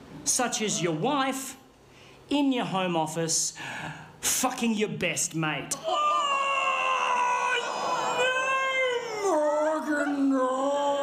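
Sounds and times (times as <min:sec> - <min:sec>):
man wailing: 0:05.8 - 0:11.0.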